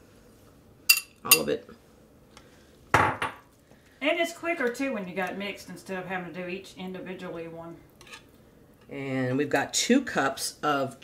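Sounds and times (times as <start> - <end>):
kitchenware clatter: 3.0 - 3.5.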